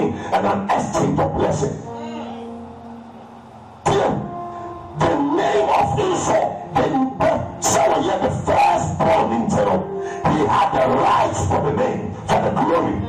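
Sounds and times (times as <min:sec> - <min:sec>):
man's amplified voice calling: 0:00.0 - 0:02.6, 0:03.8 - 0:13.0
church backing music: 0:00.0 - 0:13.0.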